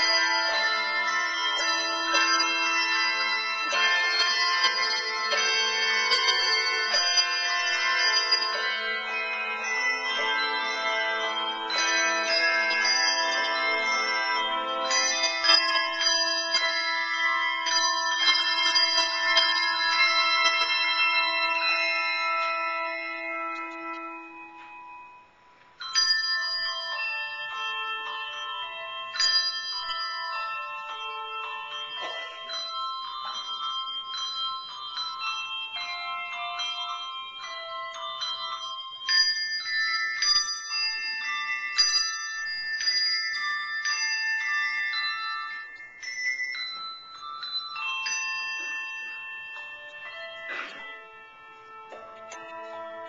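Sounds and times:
handbell choir playing chords: 0:00.0 - 0:53.0.

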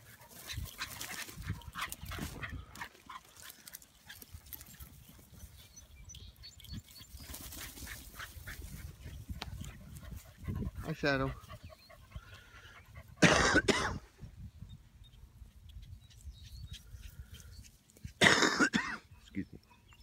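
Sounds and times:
grass rustling: 0:00.0 - 0:12.5
dogs vocalizing while playing: 0:00.0 - 0:13.8
wind and handling thumps: 0:07.7 - 0:10.8.

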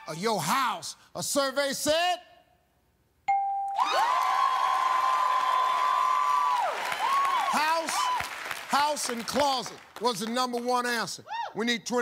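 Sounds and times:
game show ding: 0:03.3 - 0:03.9
crowd cheering: 0:03.8 - 0:09.7.

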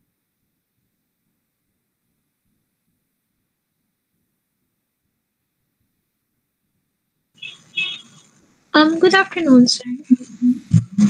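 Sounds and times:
faint microphone hiss: 0:00.0 - 0:11.0
person speaking: 0:08.8 - 0:11.0.

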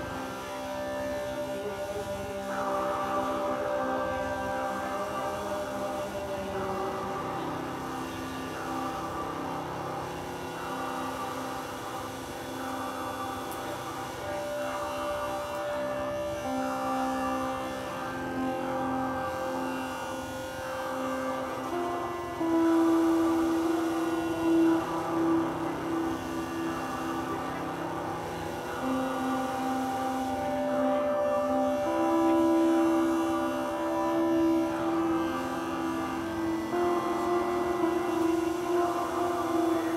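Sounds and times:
drone music sustained tones: 0:00.0 - 0:39.9.

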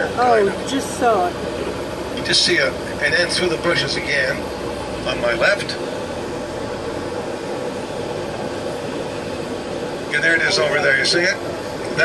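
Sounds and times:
bus engine and road noise: 0:00.0 - 0:12.0.

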